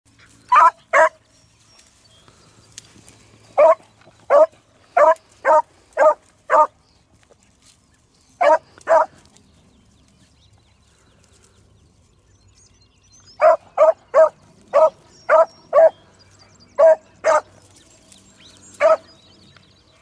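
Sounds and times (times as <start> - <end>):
beagle barking: 0.5 - 1.2, 3.6 - 6.7, 8.4 - 9.1, 13.4 - 15.9, 16.8 - 17.5, 18.8 - 19.1.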